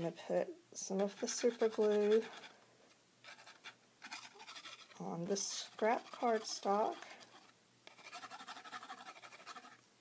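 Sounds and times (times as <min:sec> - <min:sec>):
glue bottle nozzle scratching cardstock: 0:03.3 - 0:09.8.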